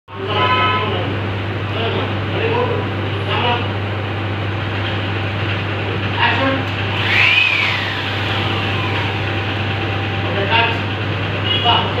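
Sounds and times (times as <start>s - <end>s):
steady low hum: 6.8s - 11.4s
sliding whistle-like tone: 6.9s - 10.3s.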